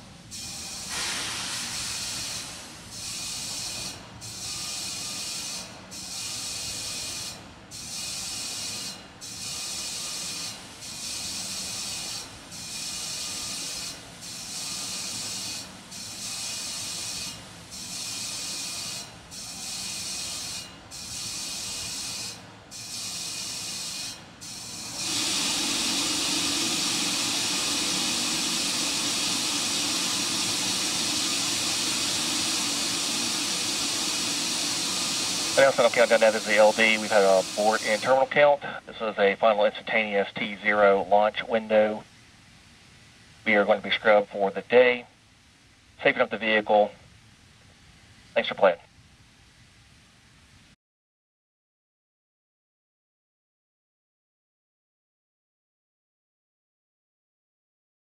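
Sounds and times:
rocket gas venting hiss: 0.6 - 3.0, 24.6 - 38.8.

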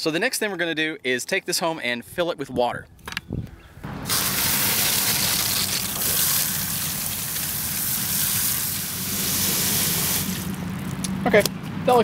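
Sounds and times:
hose spraying water into bucket: 4.0 - 10.6.

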